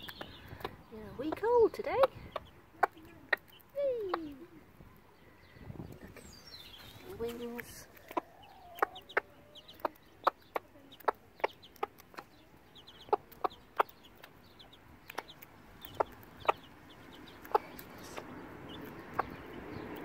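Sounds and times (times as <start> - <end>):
hen foraging clicks: 0.0 - 5.0, 6.6 - 20.0
chicks peeping: 0.0 - 20.0.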